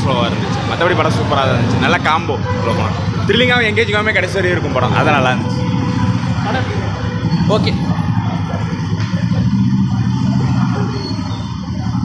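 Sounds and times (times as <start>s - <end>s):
motorcycle engines idling: 0.0s - 12.0s.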